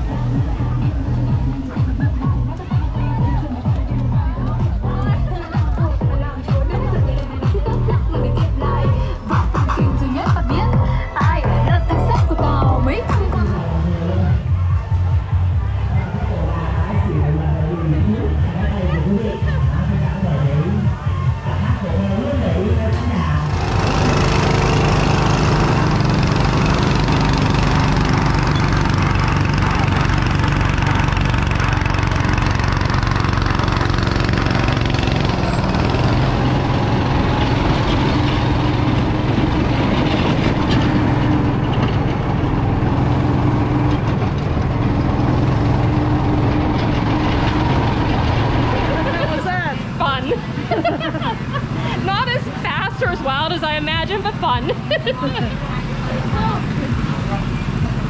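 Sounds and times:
go-kart engine running: 0.0s - 58.0s.

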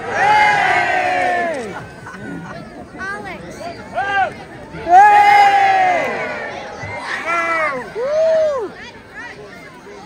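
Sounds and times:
crowd cheering hooray: 0.0s - 2.2s, 4.0s - 9.0s.

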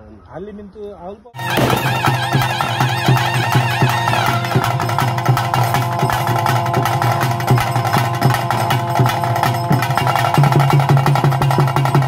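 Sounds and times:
rapid drum strokes: 1.4s - 12.0s.

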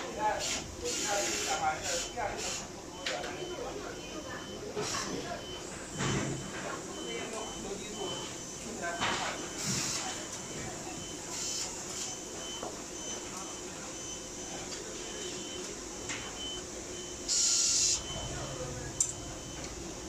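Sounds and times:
factory hum: 0.0s - 20.0s.

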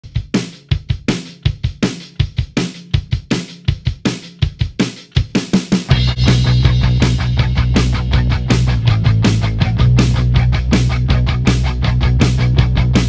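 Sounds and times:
rock drum beat: 0.0s - 13.0s.

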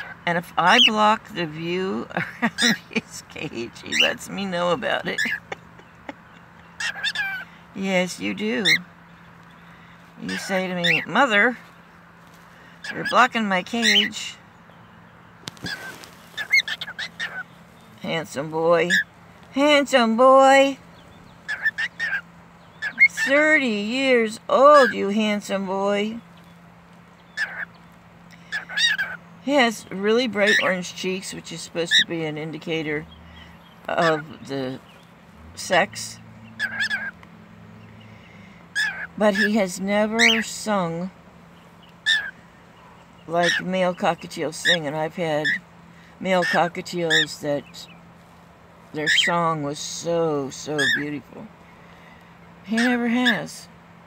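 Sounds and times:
cockatiel calls: 0.0s - 0.9s, 5.0s - 5.6s, 6.6s - 7.6s, 8.6s - 8.8s, 10.2s - 11.2s, 12.8s - 14.2s, 15.5s - 17.6s, 18.9s - 19.1s, 21.4s - 23.3s, 27.3s - 27.8s, 28.4s - 29.2s, 30.4s - 30.7s, 36.5s - 37.2s, 38.7s - 40.5s, 42.0s - 43.7s, 45.4s - 45.6s, 46.4s - 47.4s, 49.0s - 49.4s, 50.8s - 51.1s
cockatiel chirping: 6.8s - 7.4s, 15.6s - 17.5s, 21.4s - 22.2s, 27.4s - 27.8s, 28.4s - 29.2s, 36.5s - 37.2s, 38.8s - 40.5s, 42.0s - 42.4s.

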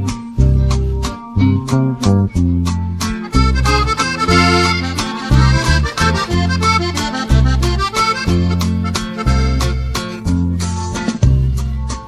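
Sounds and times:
bass notes: 0.0s - 12.0s
steady beat: 0.1s - 11.8s
accordion melody: 3.0s - 11.2s.

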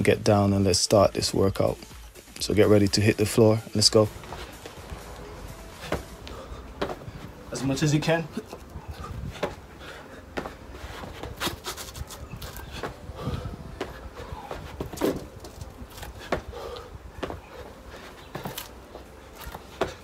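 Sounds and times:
heavy breathing: 4.2s - 7.5s, 8.3s - 20.0s.

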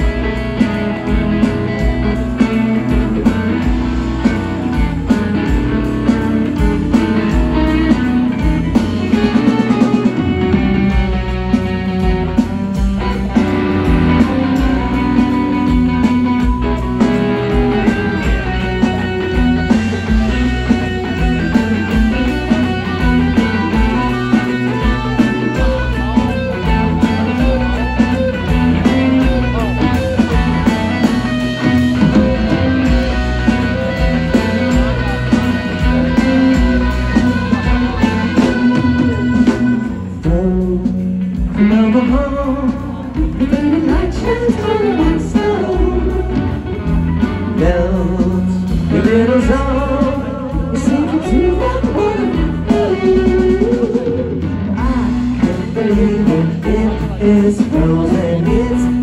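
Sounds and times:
bass guitar: 0.0s - 59.0s
drum kit beat: 0.0s - 59.0s
electric guitars: 0.0s - 59.0s.

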